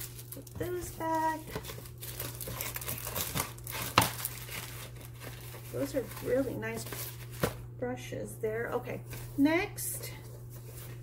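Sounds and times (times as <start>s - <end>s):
plastic packaging crinkling: 0.0s - 7.6s.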